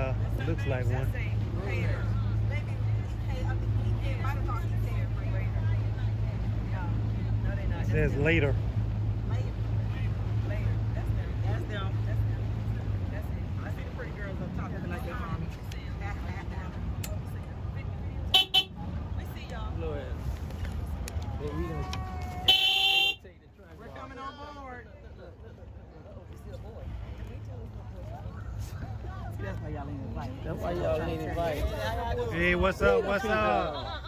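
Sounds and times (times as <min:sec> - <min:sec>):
motorboat engine running: 0:00.0 - 0:34.0.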